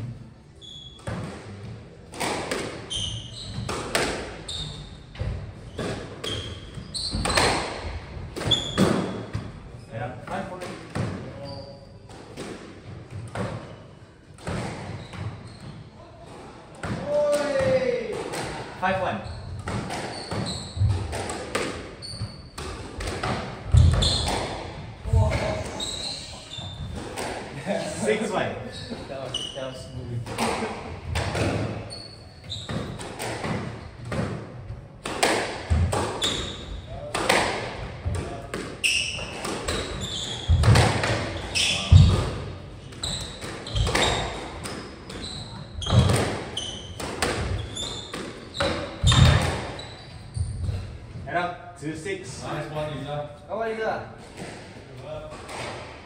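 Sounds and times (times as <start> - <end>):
shoe squeaks: 0.6 - 1.3, 2.9 - 7.7, 8.4 - 9.3, 11.3 - 12.1, 14.8 - 16.0, 19.1 - 22.8, 23.7 - 27.2, 28.0 - 30.2, 31.4 - 34.0, 36.2 - 37.1, 38.8 - 42.2, 42.8 - 51.0
squash ball hits: 1.0 - 2.9, 3.5 - 4.4, 7.0 - 9.4, 19.6 - 25.8, 30.2 - 31.8, 32.6 - 49.8.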